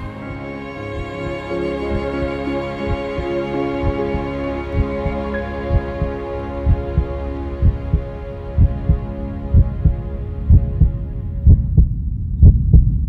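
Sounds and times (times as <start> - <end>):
sustained music chord: 0.0 - 11.5
heartbeat thumps: 0.9 - 2.1, 2.9 - 4.2, 4.8 - 13.0.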